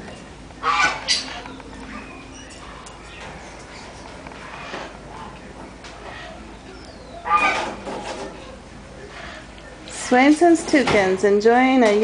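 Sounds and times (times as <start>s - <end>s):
goose honking: 0.6s - 2.1s, 7.1s - 8.1s.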